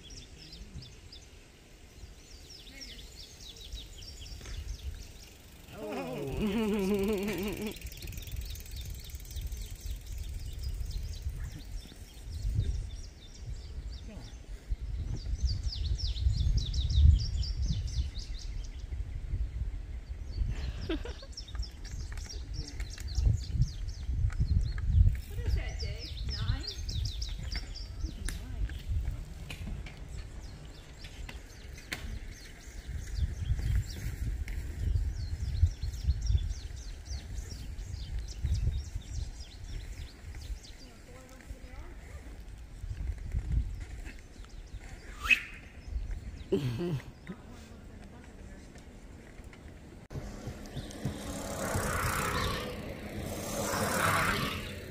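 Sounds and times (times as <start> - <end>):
songbird singing trills: 0.0 - 29.1, 30.0 - 41.9
wind buffeting microphone: 1.9 - 46.5, 47.9 - 54.9.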